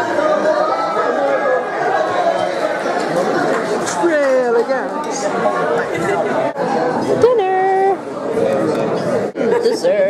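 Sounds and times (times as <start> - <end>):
many people talking: 0.0 - 10.0.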